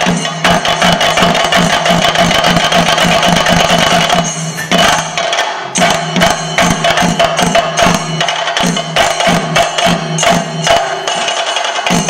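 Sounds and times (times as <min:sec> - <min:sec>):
drums playing a fast roll: 0:00.0 - 0:12.0.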